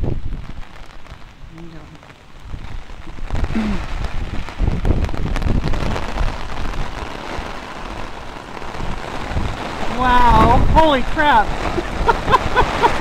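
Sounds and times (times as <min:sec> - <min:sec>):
heavy rain on pavement and cars: 0:00.0 - 0:13.0.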